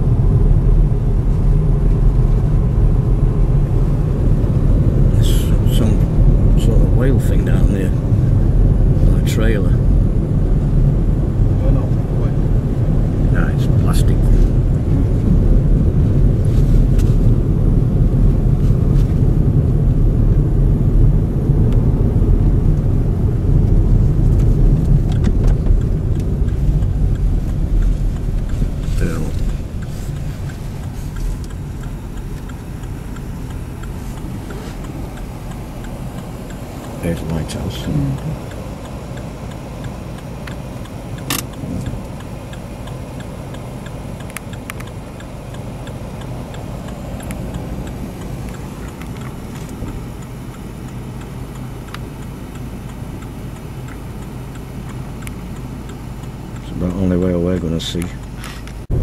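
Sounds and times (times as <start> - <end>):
car interior driving rumble: 0.0 - 59.0.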